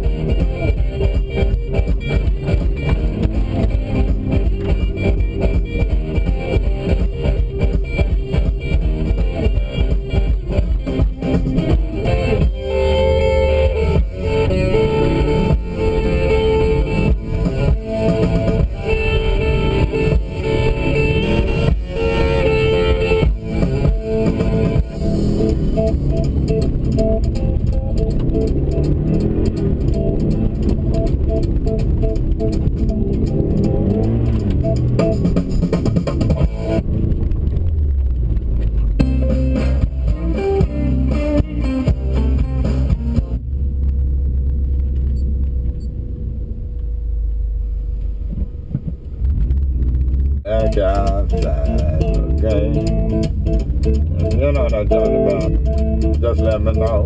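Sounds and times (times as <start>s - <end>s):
background music with guitar: 0.0s - 45.3s, 50.4s - 57.0s
deep steady low rumble: 0.0s - 57.0s.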